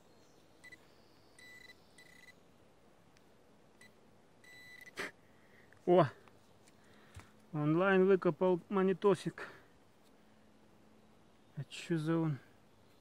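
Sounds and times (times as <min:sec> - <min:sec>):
metal detector probe beeping: 0:00.6 - 0:02.4, 0:03.8 - 0:05.0.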